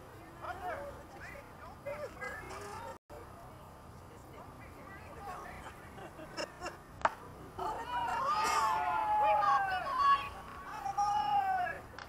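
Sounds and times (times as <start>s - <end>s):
spectators yelling and cheering: 7.6s - 11.9s.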